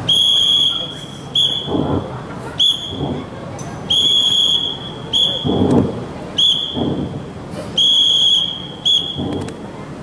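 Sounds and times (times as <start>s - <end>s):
whistle blasts: 0.0s - 1.8s, 2.6s - 3.1s, 3.9s - 5.6s, 6.4s - 7.1s, 7.8s - 9.5s.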